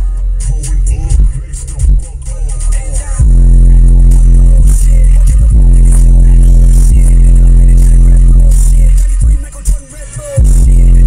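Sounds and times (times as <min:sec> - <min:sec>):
bass-heavy music from car subwoofers: 0:00.0 - 0:11.0
deep loud bass note: 0:03.1 - 0:08.9.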